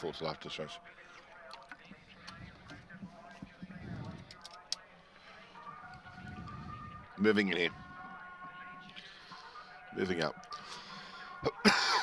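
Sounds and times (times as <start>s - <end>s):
faint background voices: 0.0s - 12.0s
light outdoor ambience: 0.0s - 12.0s.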